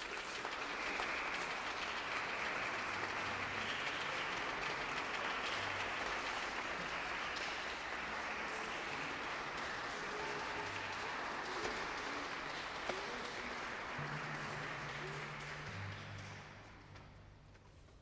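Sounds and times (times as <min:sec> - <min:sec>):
audience applauding: 0:00.0 - 0:17.3.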